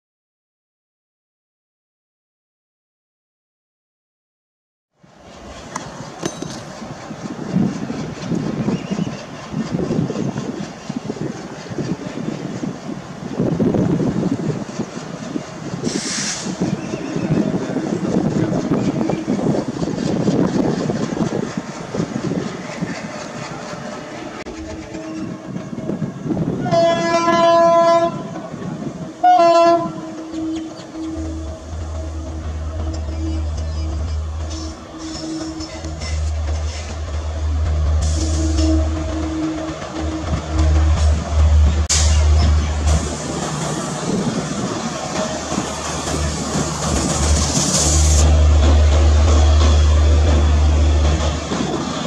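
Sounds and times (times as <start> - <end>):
train wheels clacking over rails: 5.1 - 52.0
brief hiss: 15.9 - 16.6, 41.9 - 43.4
locomotive horn blast: 26.6 - 28.4, 29.2 - 36.9, 38.0 - 43.0.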